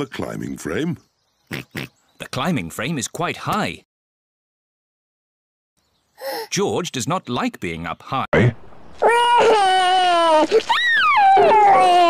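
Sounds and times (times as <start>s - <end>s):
cartoon child crying: 6.2s - 6.5s, 9.0s - 12.0s.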